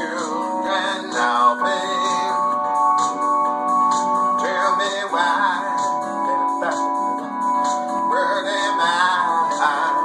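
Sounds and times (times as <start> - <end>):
held keyboard chords: 0.0 - 10.0
synth melody: 0.0 - 10.0.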